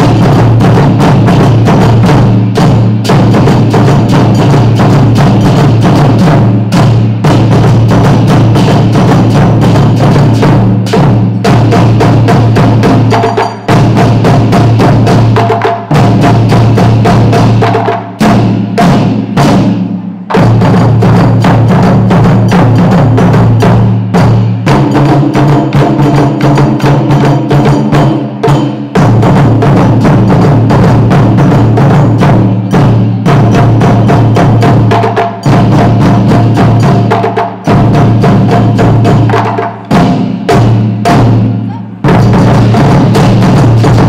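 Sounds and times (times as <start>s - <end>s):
drum ensemble playing loudly: 0.0s - 44.0s.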